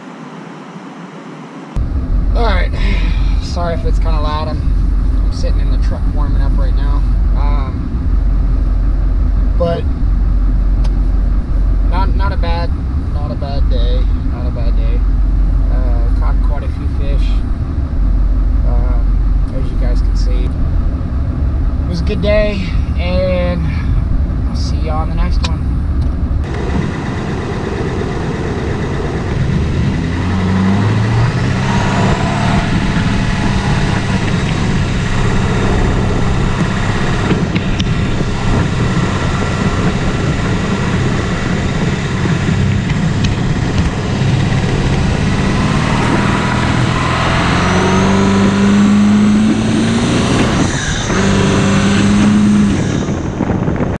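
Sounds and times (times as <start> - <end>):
road noise: 0.0 - 54.0
truck engine accelerating: 25.4 - 54.0.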